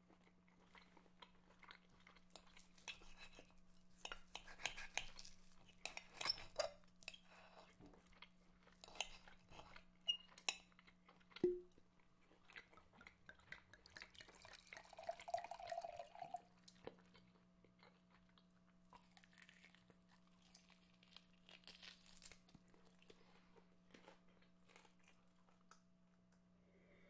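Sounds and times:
faint chewing and crunching: 0.0 - 27.0
low steady hum: 11.3 - 27.0.

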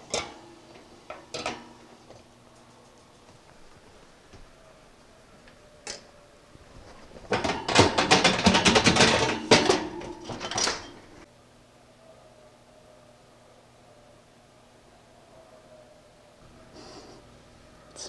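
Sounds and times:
metal kitchenware clattering: 0.0 - 0.5, 1.1 - 1.8, 7.0 - 11.2.

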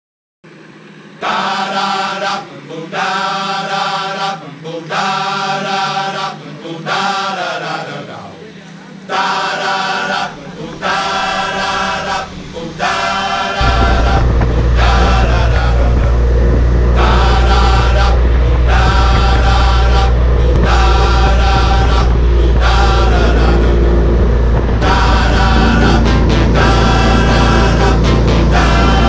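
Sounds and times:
jet boat engine running: 0.5 - 29.0
steady low drone: 0.5 - 29.0
voices chanting: 1.1 - 29.0.

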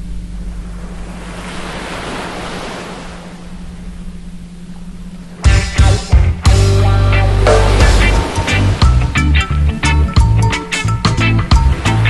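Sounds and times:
steady low tone hum: 0.0 - 11.0
small waves washing up shore: 0.6 - 3.9, 7.5 - 8.9.

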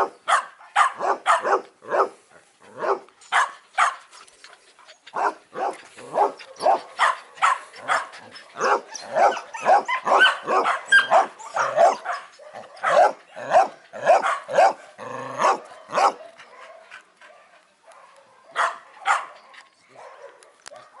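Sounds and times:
dog barking: 0.0 - 2.2, 2.8 - 4.0, 5.2 - 14.8, 15.4 - 21.0.

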